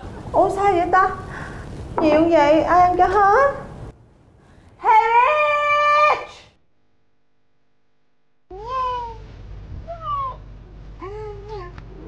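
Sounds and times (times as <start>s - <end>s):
low steady hum: 7.4s - 12.0s.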